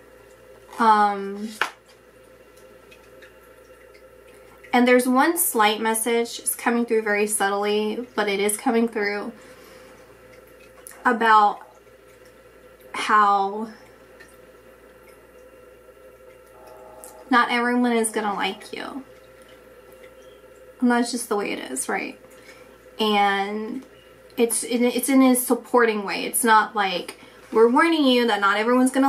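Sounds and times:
low electrical hum: 0.0 - 29.0.

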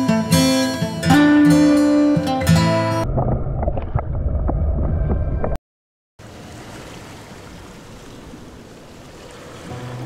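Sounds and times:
underwater rumble: 3.0 - 5.6.

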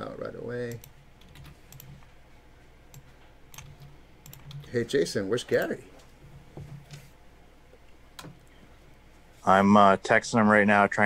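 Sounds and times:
computer keyboard typing: 0.7 - 2.0, 2.9 - 5.8.

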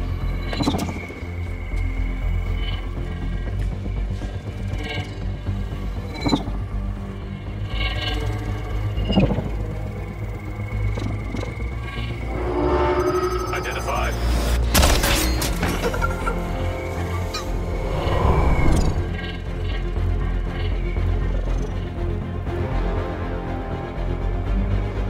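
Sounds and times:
brooding film score: 0.0 - 25.0
low drone: 0.0 - 25.0
gliding whooshes: 11.8 - 14.6, 17.0 - 19.2.

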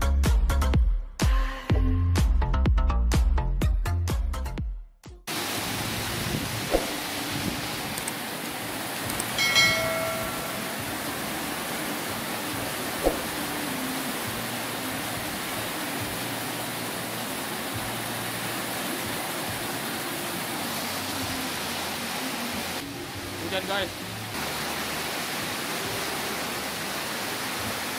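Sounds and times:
heavy rain on roof: 5.3 - 9.4.

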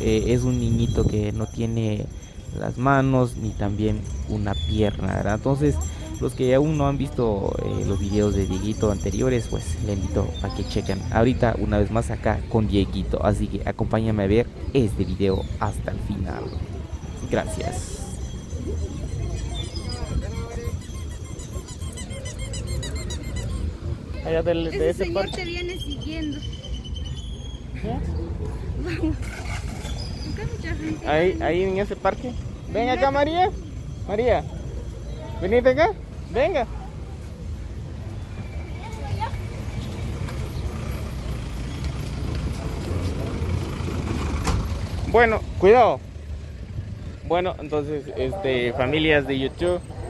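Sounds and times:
minibus engine rumbling: 0.0 - 50.0.

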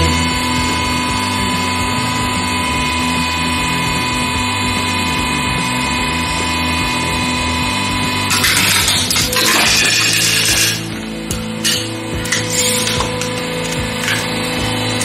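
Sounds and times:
hydraulic pump whine: 0.0 - 15.0.

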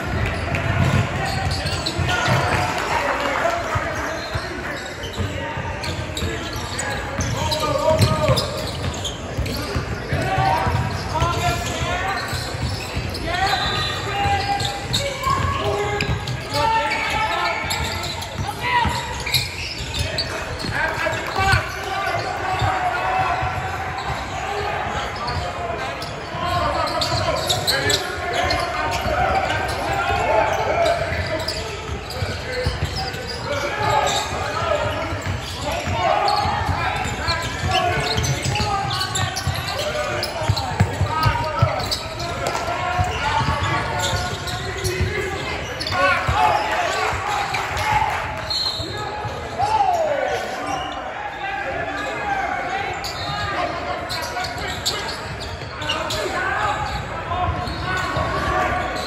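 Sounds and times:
echoing shouting and talk: 0.0 - 59.0.

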